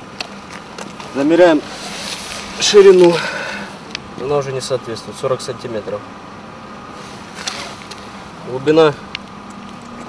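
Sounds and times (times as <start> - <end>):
street background noise: 0.0 - 10.0
rustling scrape: 0.9 - 3.2, 6.9 - 8.2.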